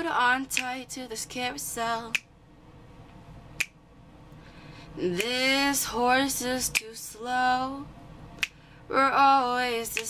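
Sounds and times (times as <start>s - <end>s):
finger snap: 0.5s - 0.8s, 2.1s - 2.3s, 3.1s - 3.8s, 5.2s - 5.4s, 6.7s - 7.0s, 8.4s - 8.6s.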